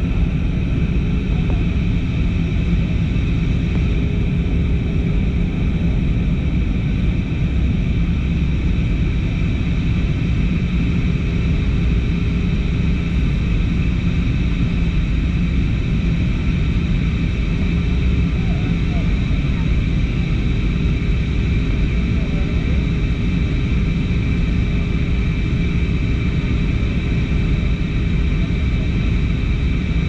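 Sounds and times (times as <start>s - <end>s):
jet engines rumbling and roaring: 0.0s - 30.0s.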